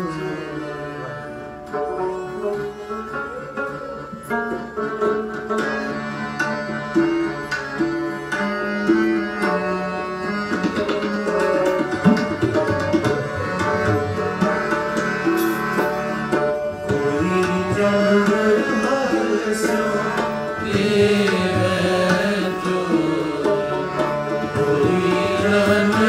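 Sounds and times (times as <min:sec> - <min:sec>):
harmonium melody: 0:00.0 - 0:26.0
rabab melody: 0:00.0 - 0:26.0
tabla drumming: 0:00.0 - 0:26.0.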